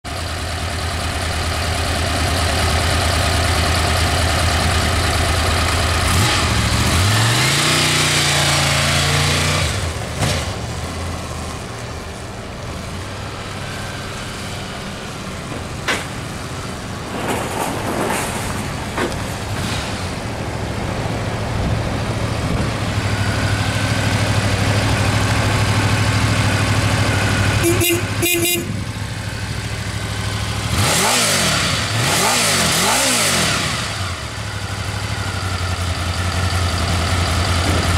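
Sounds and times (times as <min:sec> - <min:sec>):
motorcycle engine idling and revving: 0:00.1 - 0:37.9.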